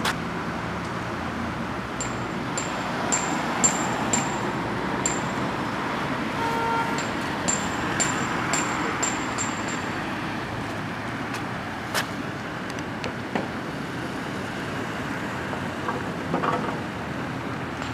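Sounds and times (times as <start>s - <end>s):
outdoor background rumble: 0.0s - 17.9s
ringing metallic taps: 2.0s - 5.5s, 6.9s - 10.0s.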